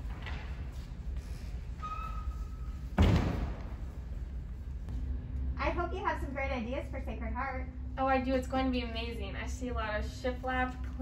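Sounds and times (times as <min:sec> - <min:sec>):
heavy thump in a hall: 0:02.8 - 0:04.1.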